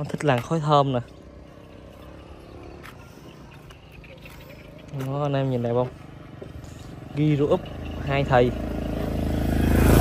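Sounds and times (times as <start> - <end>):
scooter engine idling: 0.0 - 10.0.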